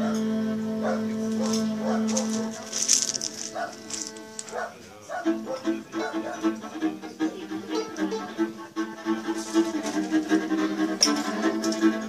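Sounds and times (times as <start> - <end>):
plucked double bass: 0.0 - 4.5, 5.2 - 12.0
violin: 0.0 - 12.0.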